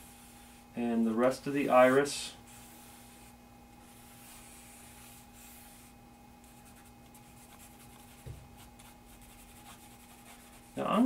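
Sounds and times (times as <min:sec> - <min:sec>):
faint hum: 0:00.0 - 0:11.0
charcoal scratching on paper: 0:02.5 - 0:11.0
soft knock: 0:08.2 - 0:08.6.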